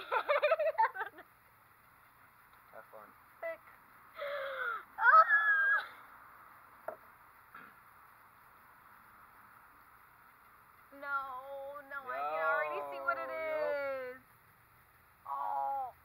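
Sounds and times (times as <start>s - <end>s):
people laughing: 0.0s - 1.2s
light knock: 6.8s - 7.8s.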